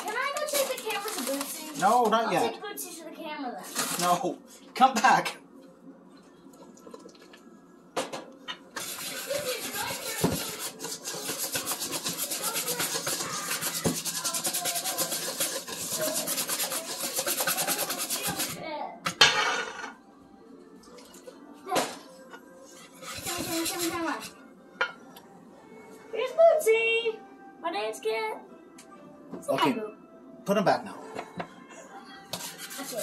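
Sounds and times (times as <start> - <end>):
whisk scraping metal bowl: 8.7 - 18.6, 22.6 - 24.4, 32.3 - 33.0.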